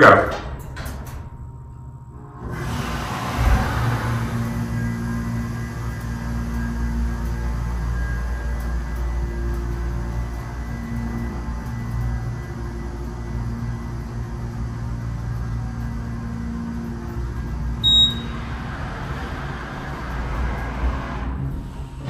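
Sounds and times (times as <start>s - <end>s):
elevator hum and rumble: 0.0s - 22.0s
high electronic chime: 17.8s - 18.4s.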